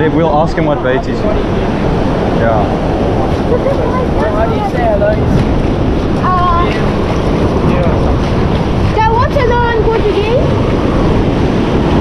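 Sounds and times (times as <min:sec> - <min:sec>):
surf breaking on rocks: 0:00.0 - 0:12.0
wind buffeting microphone: 0:00.0 - 0:12.0.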